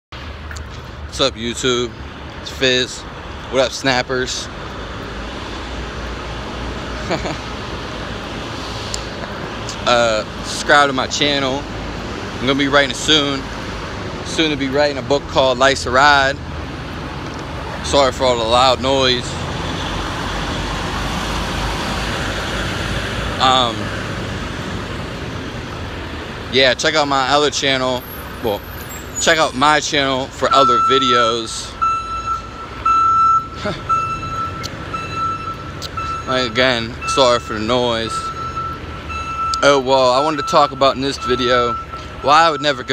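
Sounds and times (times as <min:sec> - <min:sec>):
road traffic rumble: 0:00.1 - 0:42.9
vehicle reversing alarm beeping: 0:30.4 - 0:42.9.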